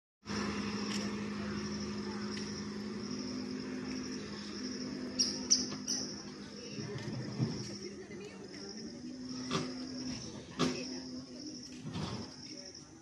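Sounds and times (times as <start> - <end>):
insects chirring: 0.3 - 13.0
low continuous hum: 0.3 - 13.0.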